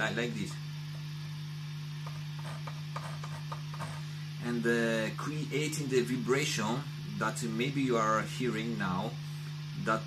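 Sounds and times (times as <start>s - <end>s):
guitar amplifier hum: 0.0s - 10.0s.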